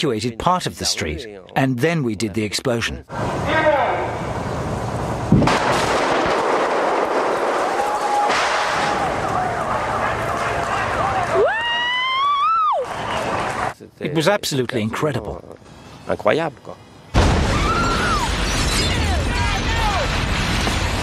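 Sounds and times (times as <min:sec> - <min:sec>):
explosion blast: 0:05.3 - 0:09.6, 0:17.2 - 0:21.0
rising wail: 0:07.6 - 0:13.7, 0:17.4 - 0:20.2.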